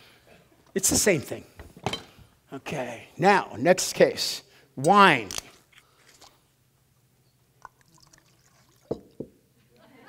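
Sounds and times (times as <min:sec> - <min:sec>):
wine dripping and splashing: 0:07.6 - 0:09.2.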